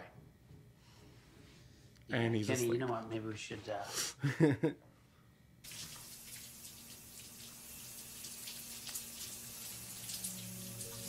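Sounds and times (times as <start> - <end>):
water running from a tap: 5.7 - 11.0.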